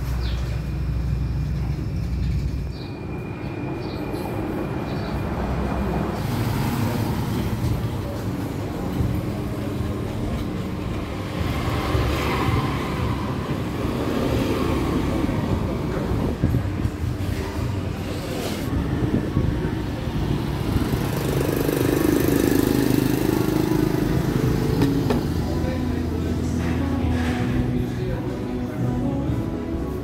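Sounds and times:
low traffic rumble: 0:00.0 - 0:30.0
faint voices: 0:03.3 - 0:30.0.

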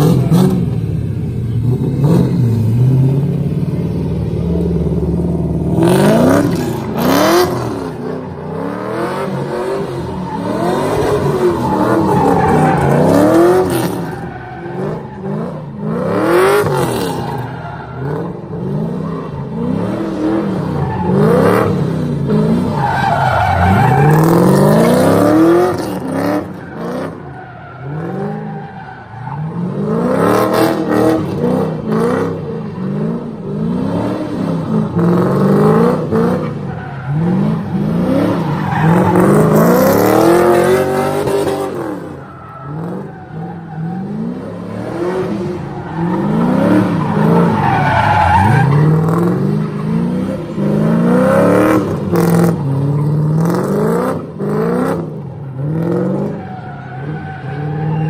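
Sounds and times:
car engine revving: 0:00.0 - 0:58.0
tyres screeching: 0:10.0 - 0:15.4.

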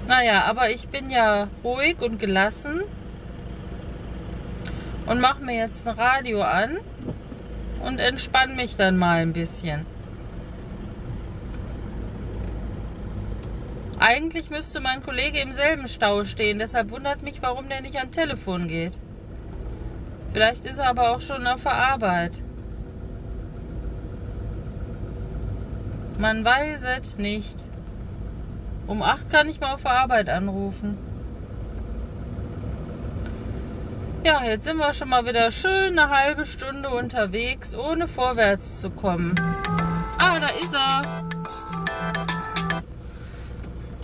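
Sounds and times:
car engine idling: 0:00.0 - 0:14.0, 0:37.1 - 0:44.0
car engine rumble inside cabin: 0:00.0 - 0:44.0.

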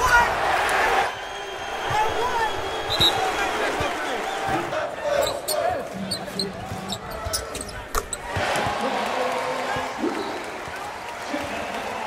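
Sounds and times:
crowd voices: 0:00.0 - 0:12.0
sneakers squeaking: 0:04.4 - 0:08.6.

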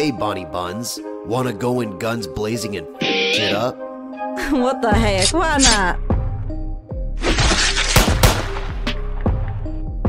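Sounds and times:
gunshot: 0:07.2 - 0:08.9.

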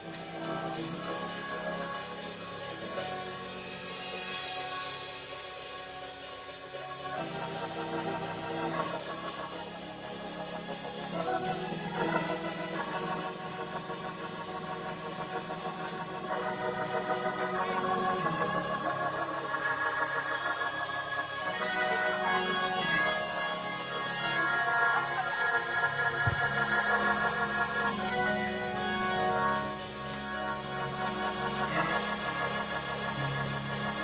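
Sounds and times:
organ playing sustained chords: 0:00.0 - 0:34.0.

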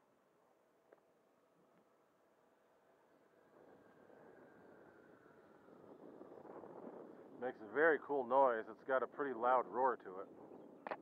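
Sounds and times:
electric ducted fan jet flying: 0:02.6 - 0:10.7.

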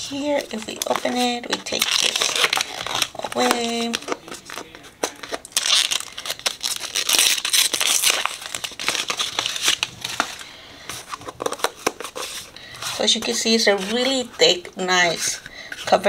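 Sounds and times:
paper crinkling: 0:00.0 - 0:16.0.

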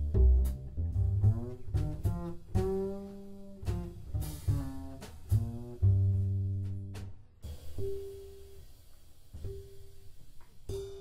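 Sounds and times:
double bass plucked notes: 0:00.0 - 0:08.6.

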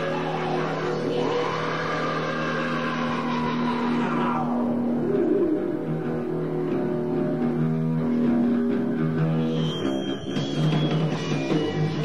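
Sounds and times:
bending guitar tone: 0:00.0 - 0:12.0
distorted guitar and bass drone: 0:00.0 - 0:12.0.

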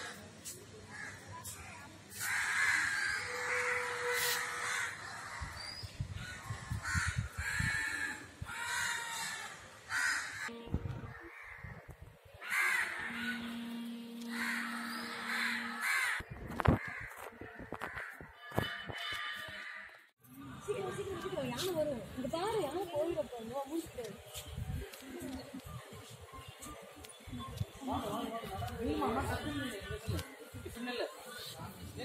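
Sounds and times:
crows cawing: 0:02.1 - 0:05.5, 0:06.3 - 0:10.5, 0:12.4 - 0:13.7, 0:14.3 - 0:18.4, 0:19.0 - 0:20.0
low tone humming: 0:13.0 - 0:15.8.

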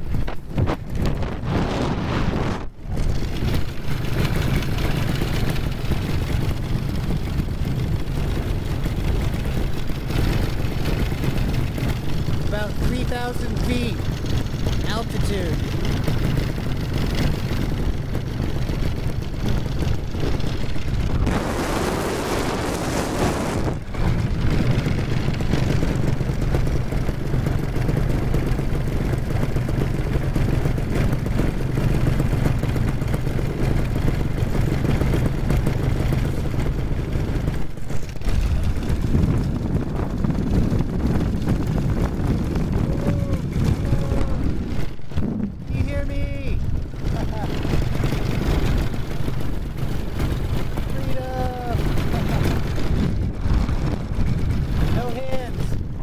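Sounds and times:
paramotor engine drone: 0:00.0 - 0:56.0
rush of noise: 0:00.0 - 0:56.0.

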